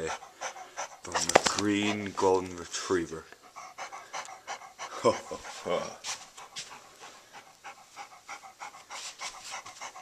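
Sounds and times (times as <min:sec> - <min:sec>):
dog panting: 0:00.0 - 0:10.0.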